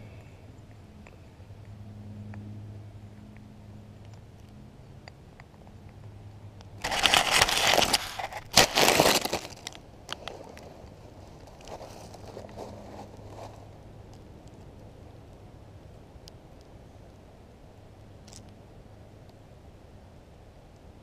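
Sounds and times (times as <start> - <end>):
dry leaves crunching underfoot: 6.8 - 13.7.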